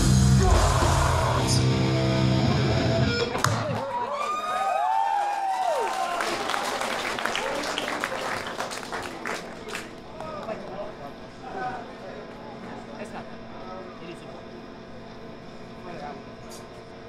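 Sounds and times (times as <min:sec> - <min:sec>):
punk band final chord: 0:00.0 - 0:03.7
crowd whooping: 0:00.0 - 0:10.6
scattered clapping: 0:04.9 - 0:10.6.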